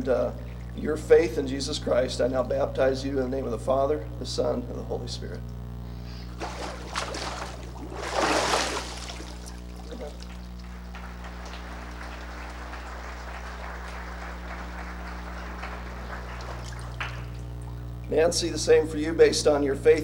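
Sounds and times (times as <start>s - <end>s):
water surging and splashing: 6.4s - 10.6s
water streaming and trickling: 6.4s - 10.8s.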